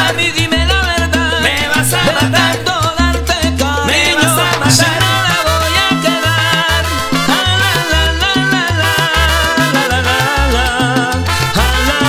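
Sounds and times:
percussion: 0.0 - 12.0
repeating bass line: 0.0 - 12.0
salsa band playing: 0.0 - 12.0.

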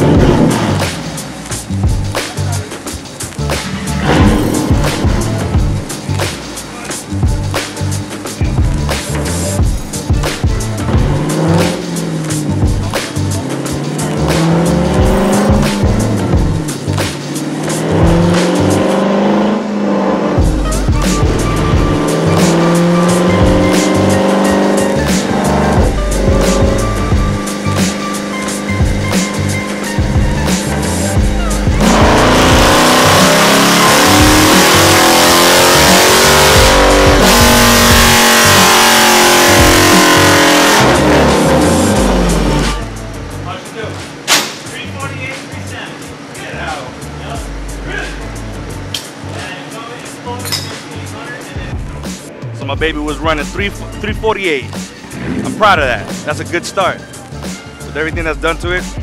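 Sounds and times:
car engine revving on dyno: 0.0 - 1.4, 3.6 - 5.7, 10.8 - 43.1, 55.0 - 57.1.

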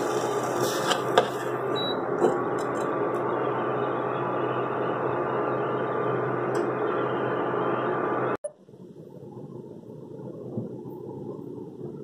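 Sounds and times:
cooktop fan noise and hum: 0.0 - 12.0.

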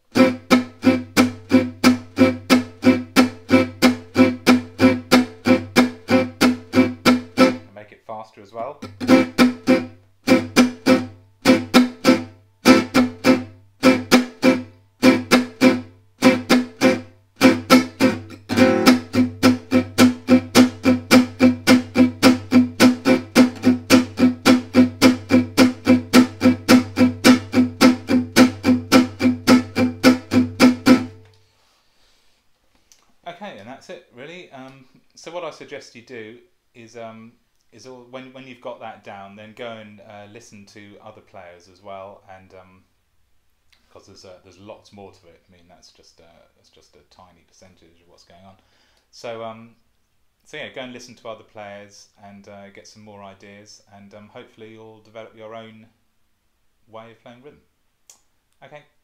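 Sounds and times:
acoustic guitar strummed chords: 0.1 - 7.7, 8.8 - 31.3.

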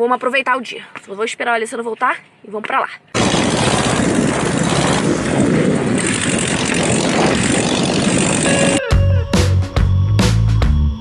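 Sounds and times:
road noise: 3.1 - 9.1
wind buffeting: 3.2 - 8.8.

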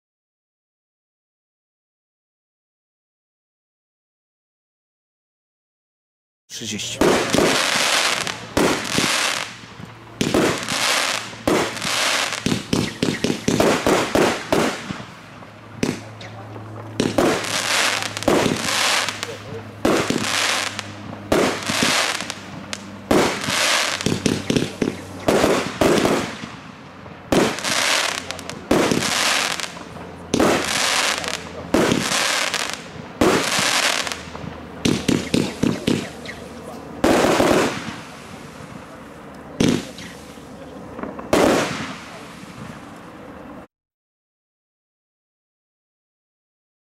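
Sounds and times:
firework bangs: 6.8 - 43.3
firework star burst hiss: 7.2 - 15.0.

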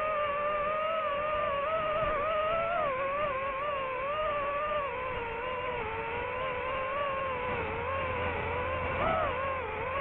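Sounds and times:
drone propellers whining: 0.0 - 10.0.

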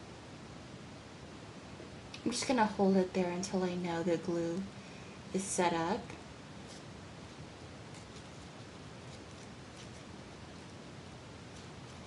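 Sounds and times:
faint steady hiss: 0.0 - 12.0
paper flowers rustling: 6.6 - 6.9, 7.9 - 10.8, 11.4 - 12.0.

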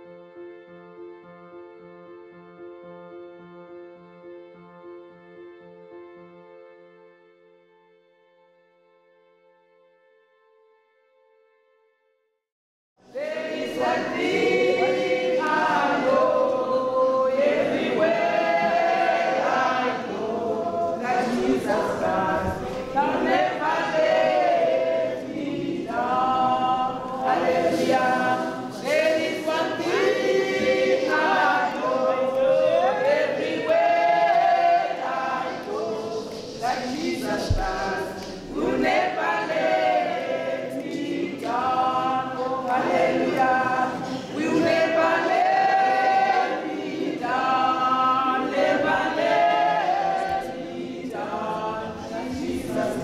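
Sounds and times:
choir singing in harmony: 13.0 - 53.0.

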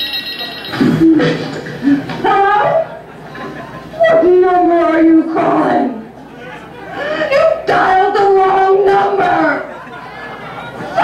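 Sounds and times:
woman's recorded voice over sound system: 1.0 - 2.9, 4.0 - 6.1, 7.1 - 9.7.

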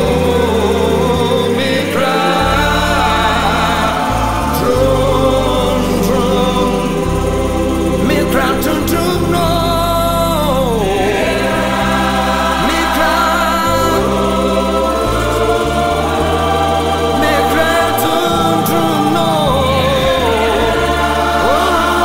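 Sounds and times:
gospel choir singing: 0.0 - 22.0
instrumental backing with bass: 0.0 - 22.0.

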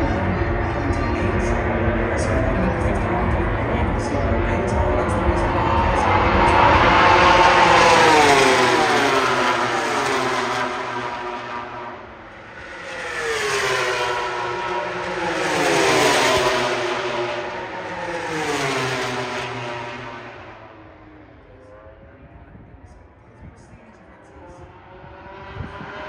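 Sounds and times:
racing motorcycles passing at high revs: 0.2 - 20.9, 24.5 - 26.0.

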